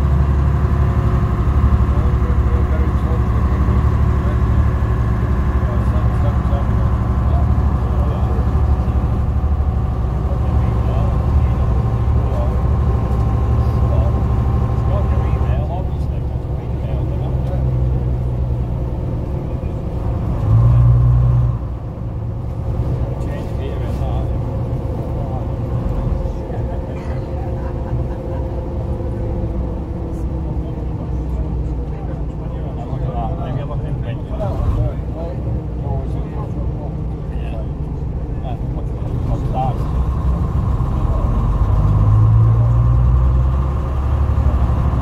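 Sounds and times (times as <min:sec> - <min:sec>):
coach diesel engine running: 0:00.0 - 0:45.0.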